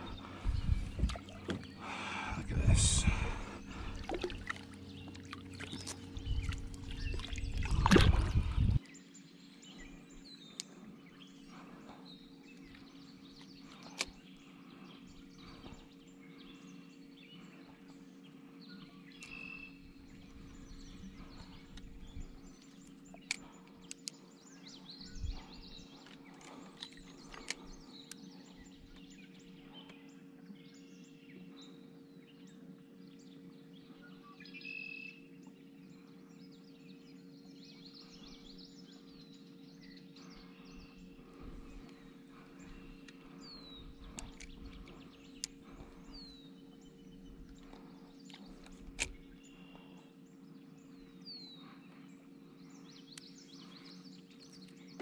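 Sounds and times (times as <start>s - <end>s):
birds calling: 0.0s - 55.0s
steady low hum: 0.0s - 55.0s.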